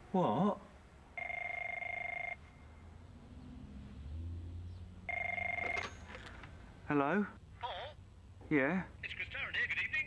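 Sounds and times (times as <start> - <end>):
desk telephone ringing: 1.2 - 2.4, 5.1 - 6.1.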